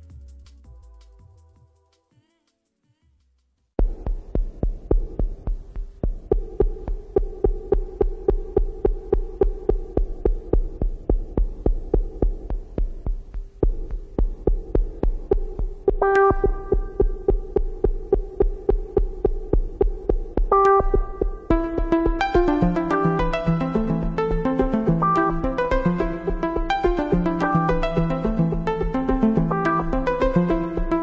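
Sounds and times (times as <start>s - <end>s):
deep kick drum pulsing: 3.8s - 31.0s
synthesizer melody: 3.8s - 31.0s
sustained drone: 6.1s - 21.6s.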